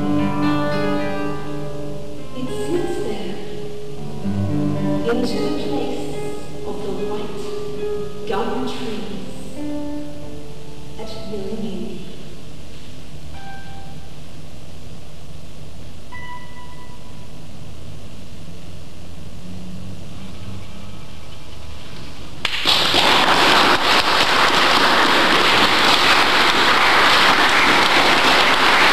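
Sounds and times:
classical guitar notes: 0.0 - 14.2, 16.1 - 18.0
audience applause: 22.4 - 28.9.

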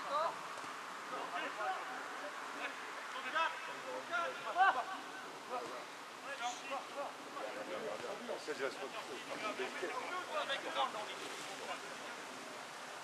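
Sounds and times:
faint outdoor noise: 0.0 - 13.0.

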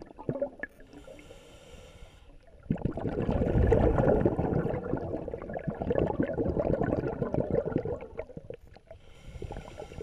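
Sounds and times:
underwater breathing bubbles: 0.0 - 10.0
faint hiss: 0.8 - 2.5.

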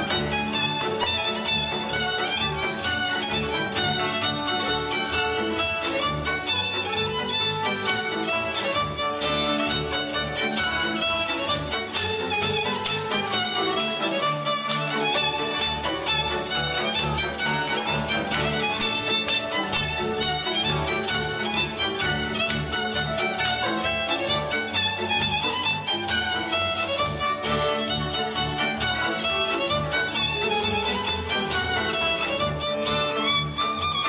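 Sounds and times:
fiddle leading dance tune: 0.0 - 34.0.

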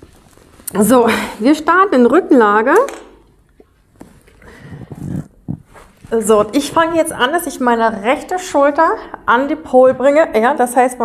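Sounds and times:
person shifting on exercise mat: 3.8 - 7.1.

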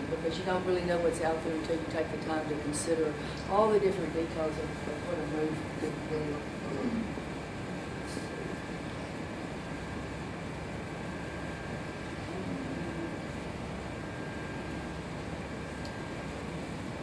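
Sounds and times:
ventilation hiss and hum: 0.0 - 17.0.

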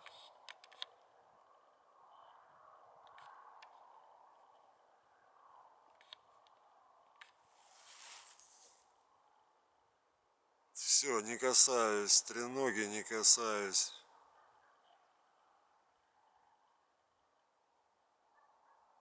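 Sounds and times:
faint clicks: 0.0 - 1.6, 3.0 - 4.7
soft hiss: 7.4 - 9.0.

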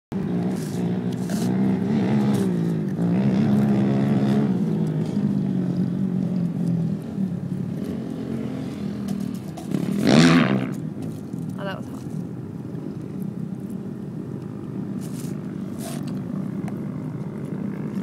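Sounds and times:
quad bike engines revving: 0.2 - 11.8.

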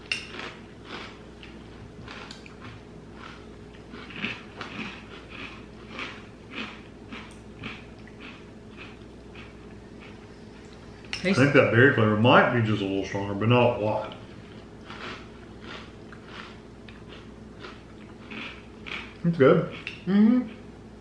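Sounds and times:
chewing crunchy cereal: 0.0 - 10.9, 14.1 - 20.6.

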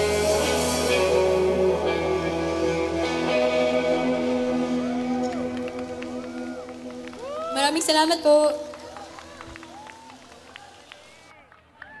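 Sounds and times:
rock band final chord: 0.0 - 7.4
audience cheering and shouting: 2.9 - 8.0, 8.6 - 12.0.

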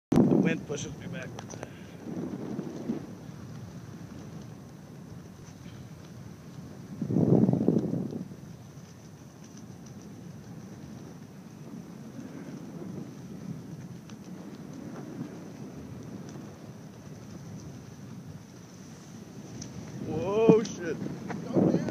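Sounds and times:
wind buffeting microphone: 0.1 - 21.9.

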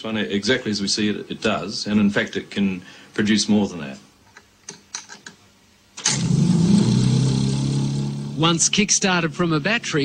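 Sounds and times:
motor-generator humming: 6.0 - 10.0.

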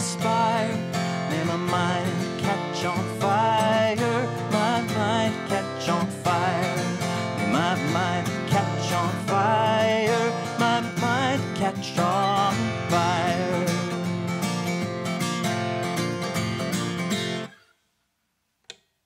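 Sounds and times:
wordless singing with vibrato: 0.0 - 14.2
acoustic guitar strumming: 0.0 - 17.7.

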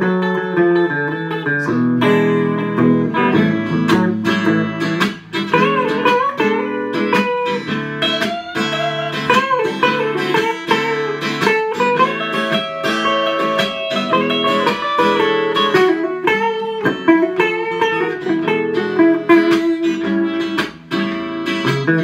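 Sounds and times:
electric guitar lead lines: 0.0 - 22.0
rhythm guitar accompaniment: 0.0 - 22.0.

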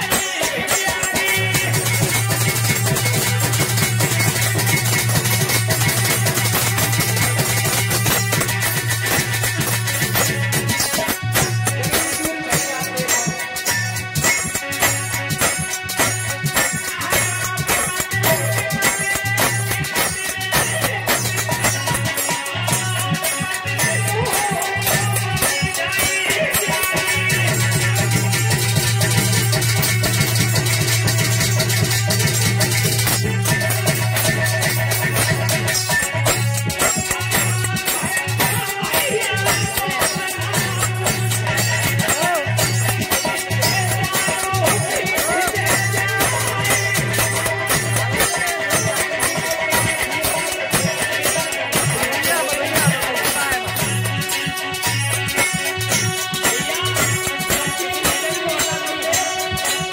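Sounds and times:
fast steady beat: 0.0 - 59.9
fast steady drum rhythm: 0.0 - 59.9
folk ensemble with plucked strings: 0.0 - 59.9.

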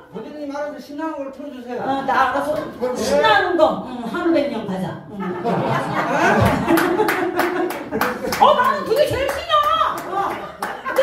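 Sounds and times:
hand claps: 6.4 - 11.0.

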